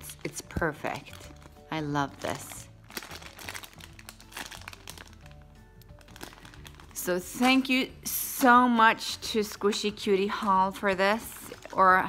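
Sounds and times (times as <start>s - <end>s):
plastic packaging crinkling: 0.0s - 8.0s, 10.9s - 12.0s
soft background music: 0.0s - 12.0s.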